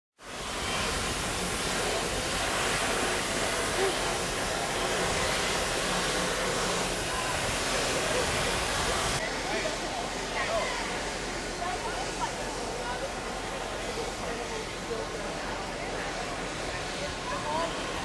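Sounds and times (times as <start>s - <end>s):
faint voices: 1.7s - 18.0s.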